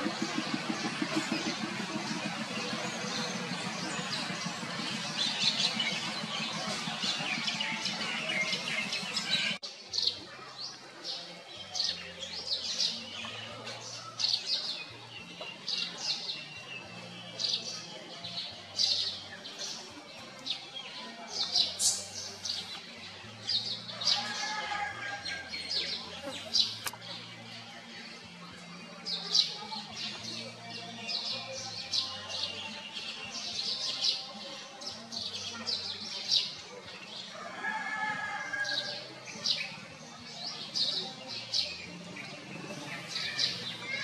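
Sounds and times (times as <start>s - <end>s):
birds chirping: 0.0s - 9.6s
dense steady background noise: 0.0s - 9.8s.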